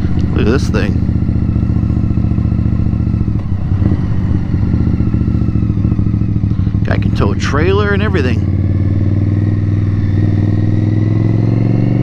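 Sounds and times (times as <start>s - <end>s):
motorcycle engine cruising: 0.0s - 12.0s.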